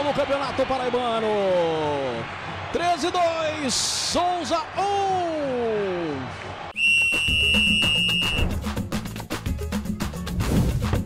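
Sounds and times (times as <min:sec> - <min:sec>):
high whistle-like tone: 0:06.8 - 0:08.6
percussion hits: 0:08.1 - 0:09.6.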